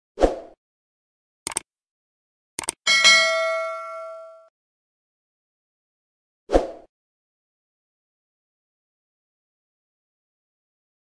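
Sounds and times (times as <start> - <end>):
notification bell ding: 2.9 - 4.5.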